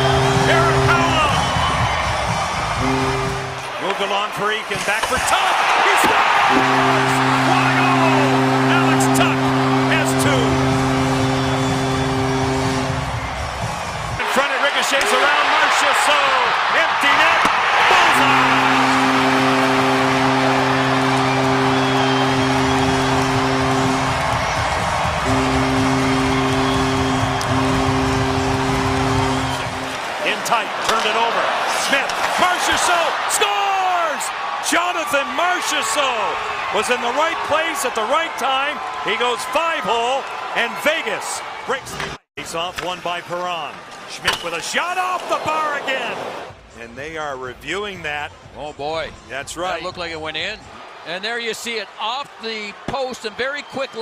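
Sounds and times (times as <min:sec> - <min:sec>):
goal horn blasts: 0:00.0 - 0:03.9, 0:05.9 - 0:13.6, 0:17.2 - 0:30.1
crowd noise: 0:00.0 - 0:46.7, 0:48.3 - 0:54.0.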